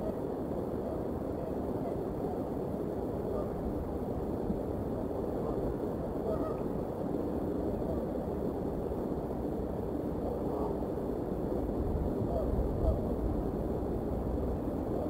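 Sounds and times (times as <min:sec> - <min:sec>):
low outdoor rumble: 0:00.0 - 0:15.0.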